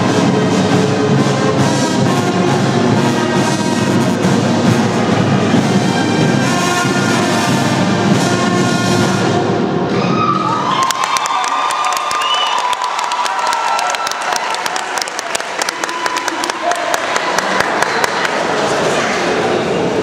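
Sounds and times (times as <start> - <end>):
marching band brass playing: 0.0 - 10.4
people cheering: 9.9 - 20.0
people clapping: 10.6 - 19.1.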